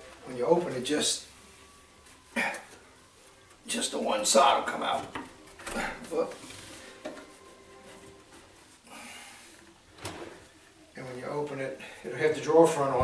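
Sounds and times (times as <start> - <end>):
drawer sliding open: 10.0 - 10.5.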